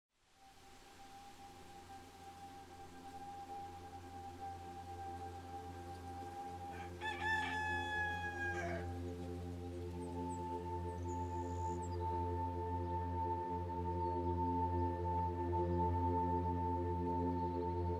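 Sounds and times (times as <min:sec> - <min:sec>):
ambient music drone: 0:00.3 - 0:17.9
rooster crowing: 0:06.4 - 0:09.0.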